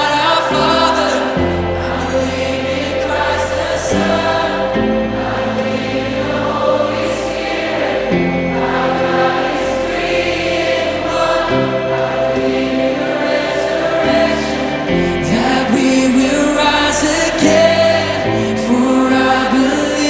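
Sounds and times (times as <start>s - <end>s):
instrumental backing with held chords: 0.0s - 20.0s
massed voices singing: 0.0s - 20.0s.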